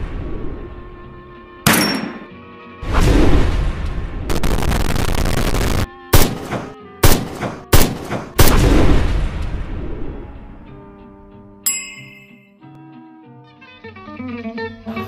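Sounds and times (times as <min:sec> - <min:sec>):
music: 0:00.0 - 0:04.3, 0:05.6 - 0:15.0
sharp bangs: 0:01.7 - 0:09.5
loud burst of noise: 0:04.3 - 0:05.9.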